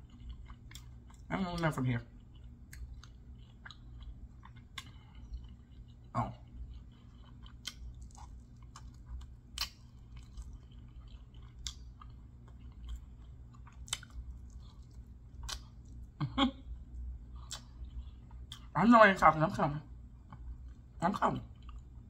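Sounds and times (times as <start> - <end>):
close chewing of meat: 0.0 - 18.8
steady low hum: 0.0 - 22.0
wet mouth clicks and smacks: 7.5 - 10.9, 13.2 - 16.0, 17.5 - 18.7.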